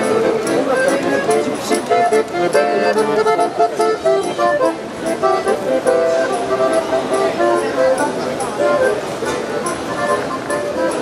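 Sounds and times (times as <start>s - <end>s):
melody of short even notes: 0.0s - 11.0s.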